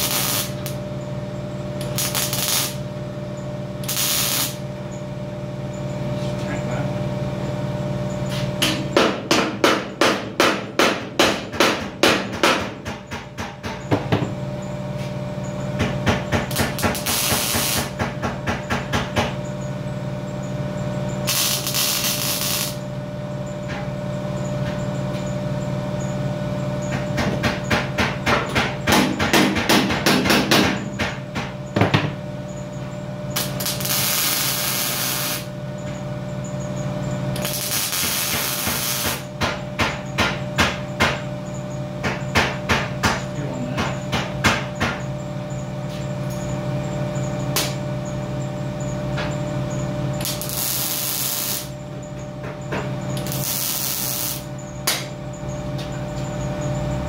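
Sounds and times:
compressed air blasts: 0.0 - 0.6
welder crackling and spitting: 0.0 - 0.8, 1.8 - 2.8, 3.8 - 4.6, 16.8 - 17.9, 21.3 - 22.8, 33.4 - 35.4, 37.4 - 39.2, 50.2 - 51.7, 53.2 - 54.4
steady hum: 0.0 - 57.0.

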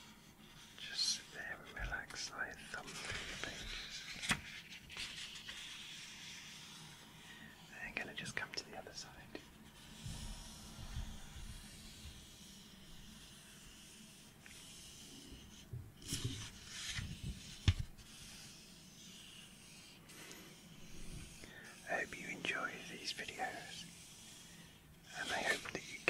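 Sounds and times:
soft papery hiss: 0.0 - 26.0
book pages riffled: 16.0 - 18.1.

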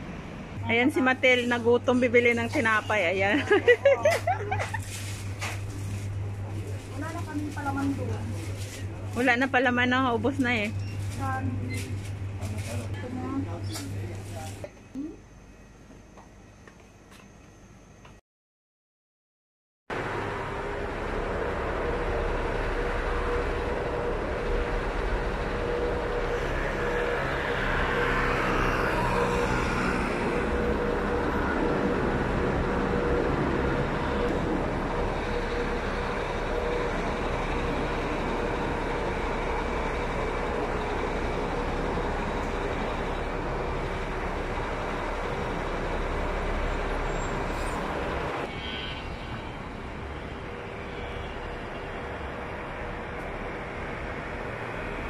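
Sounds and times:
city road traffic: 0.0 - 15.2, 19.9 - 55.0
vehicle passing: 20.0 - 48.5.

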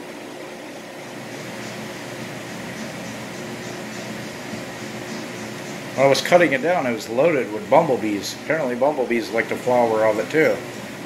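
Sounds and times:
indoor background hum and hiss: 0.0 - 11.0.

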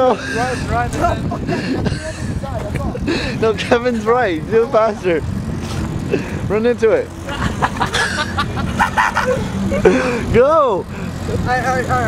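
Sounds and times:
people laughing: 0.0 - 3.9, 7.2 - 11.4
low hum: 0.0 - 12.0.

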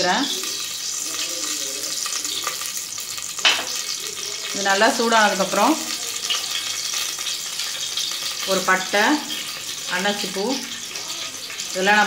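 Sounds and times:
hot oil sizzling: 0.0 - 12.0.

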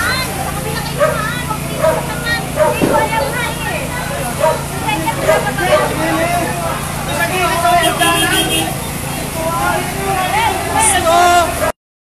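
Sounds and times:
low engine hum: 0.0 - 11.7
crowd shouting: 0.0 - 11.8.

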